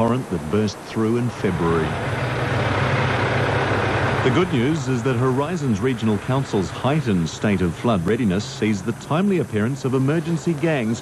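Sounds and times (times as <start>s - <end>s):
tractor engine droning: 0.0s - 11.0s.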